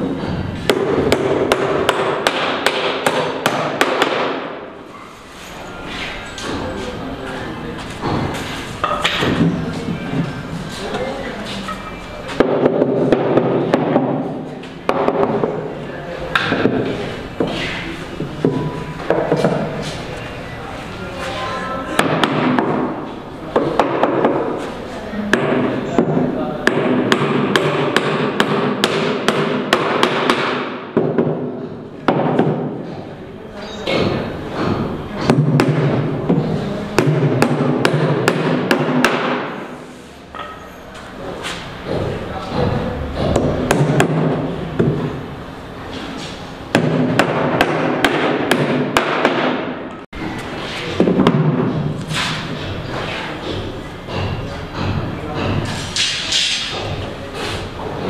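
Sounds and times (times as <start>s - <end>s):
hammer striking wooden formwork: 0.2s - 4.6s, 8.0s - 9.6s, 12.4s - 15.6s, 16.3s - 17.6s, 21.9s - 24.6s, 25.3s - 32.8s, 33.9s - 39.6s, 41.9s - 45.1s, 46.7s - 50.0s, 51.0s - 57.0s.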